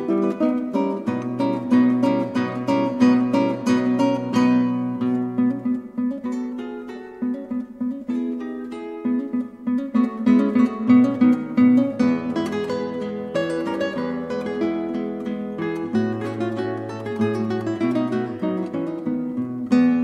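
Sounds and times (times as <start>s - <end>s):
acoustic guitar picking chord: 0.0s - 20.0s.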